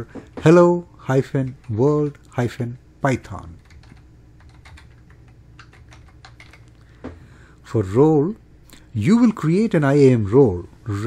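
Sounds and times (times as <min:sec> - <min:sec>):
computer keyboard typing: 0:03.6 - 0:06.8.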